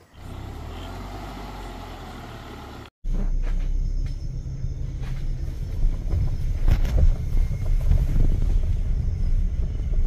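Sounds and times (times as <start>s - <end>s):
low engine rumble: 0.0s - 10.0s
vehicle driving on dirt track: 0.0s - 10.0s.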